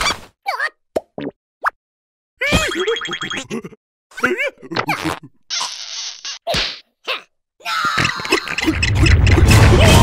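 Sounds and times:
cartoon character squeaks: 4.8 - 7.2.

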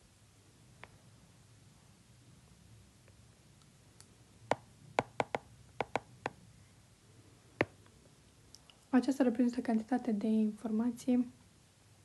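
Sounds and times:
stylus tapping on glass screen: 4.5 - 6.4.

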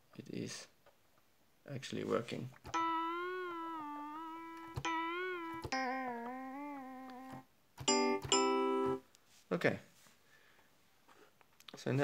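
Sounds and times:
electric piano notes bending: 2.7 - 9.0.

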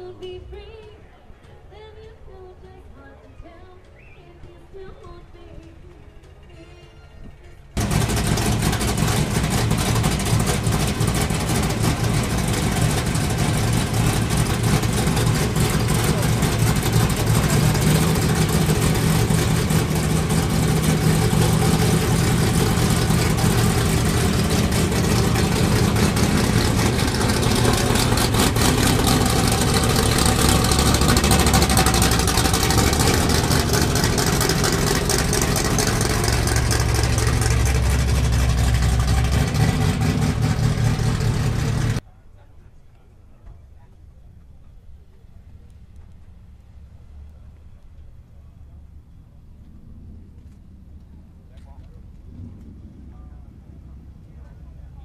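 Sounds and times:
supercharged car engine idling: 7.8 - 42.0.

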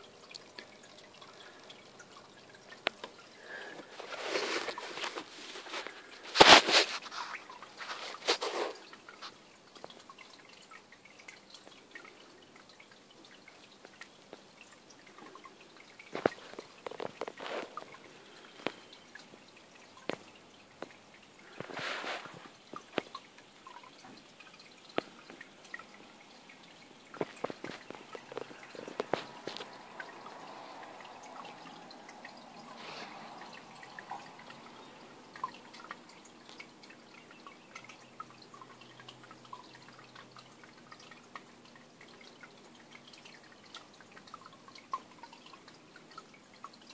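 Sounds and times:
water dripping and trickling: 0.0 - 46.9.

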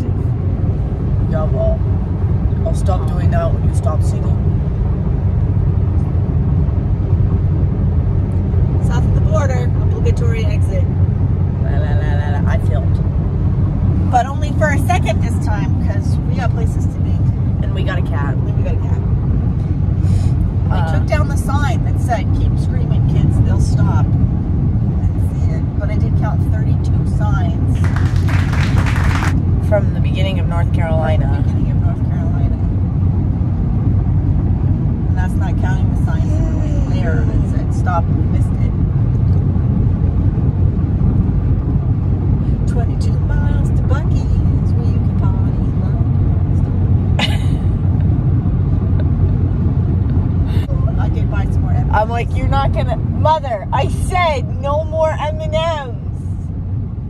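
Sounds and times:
car cabin road and engine noise: 0.0 - 57.0
voices: 2.5 - 4.5, 8.8 - 10.9, 11.6 - 13.0, 14.0 - 19.1, 20.1 - 24.1, 25.0 - 32.7, 35.1 - 38.8, 42.5 - 46.6, 50.5 - 56.4.

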